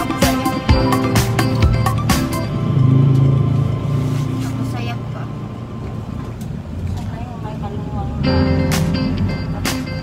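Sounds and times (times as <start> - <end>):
engine and road rumble: 0.0 - 10.0.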